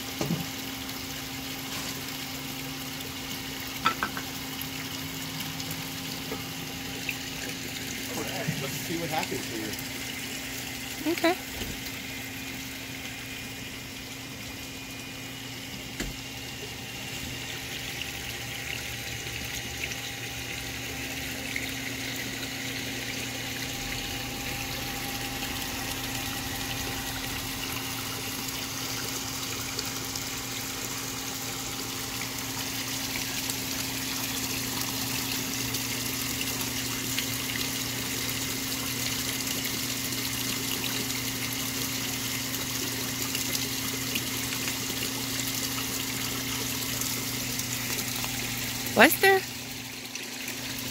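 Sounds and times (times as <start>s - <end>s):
low pump hum: 0.0s - 50.9s.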